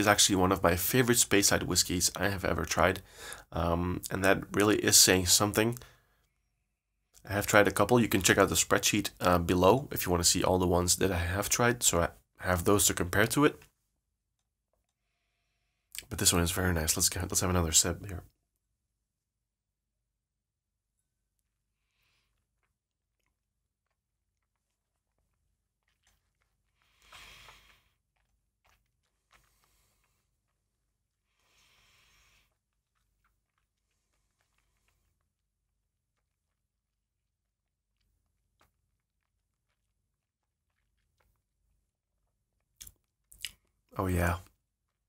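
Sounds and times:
faint breath: 3.0s - 3.5s, 26.8s - 28.0s, 31.3s - 32.6s
wet mouth and lip sounds: 38.0s - 43.9s
wet mouth clicks: 42.8s - 43.7s.

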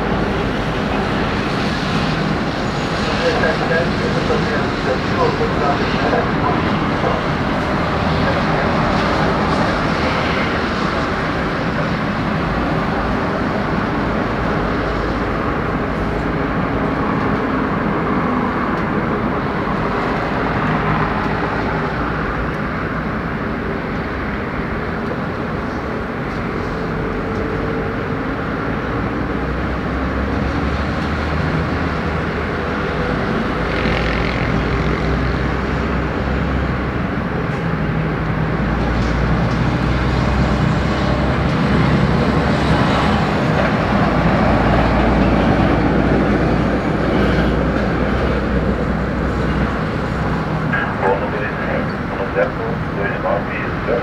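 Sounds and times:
jet engines roaring: 0.0s - 54.0s.

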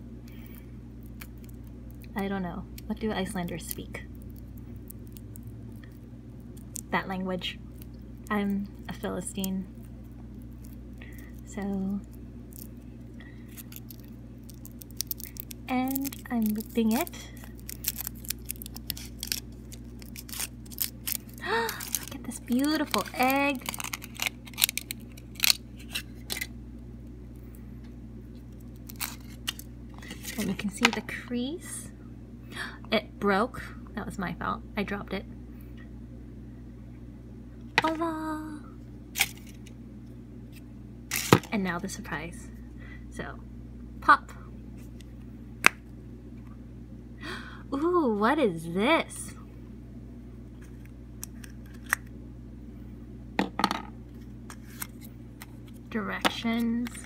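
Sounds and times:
steady low hum: 0.0s - 57.0s
aluminium foil crackling: 2.8s - 26.5s, 28.5s - 30.8s, 41.1s - 41.5s.

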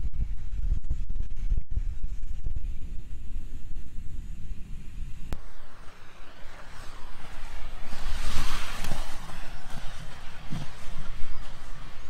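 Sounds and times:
low rumble: 0.0s - 12.0s
skate wheels hissing on concrete: 0.3s - 12.0s.

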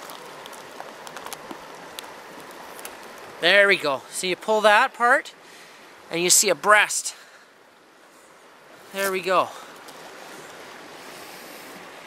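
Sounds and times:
stream rushing: 0.0s - 12.0s.

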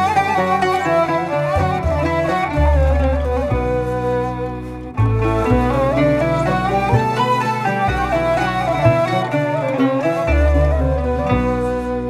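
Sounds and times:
deep double bass notes: 0.0s - 12.0s
folk ensemble playing a melody: 0.0s - 12.0s
plucked strings: 0.0s - 12.0s.

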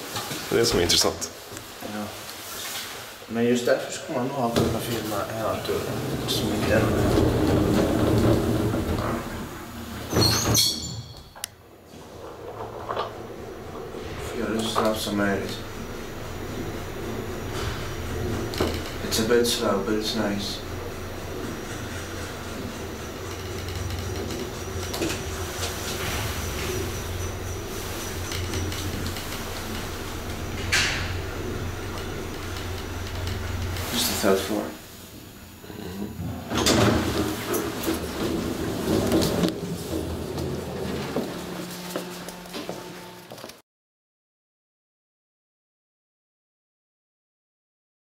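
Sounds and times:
elevator doors sliding shut: 4.2s - 43.2s
elevator door clunk: 4.5s - 35.3s, 36.2s - 43.2s.

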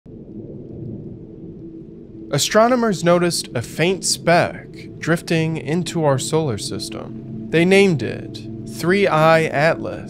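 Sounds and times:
low rumbling drone: 0.1s - 10.0s.

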